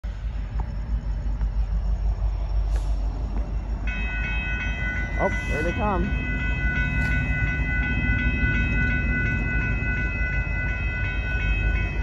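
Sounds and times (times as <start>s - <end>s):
low rumbling background noise: 0.0s - 3.9s
railroad crossing bell ringing: 3.2s - 12.0s.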